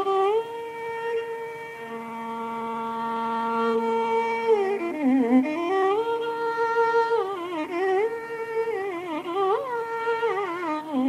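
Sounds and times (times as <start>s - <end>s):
violin melody with gliding notes: 0.0s - 11.0s.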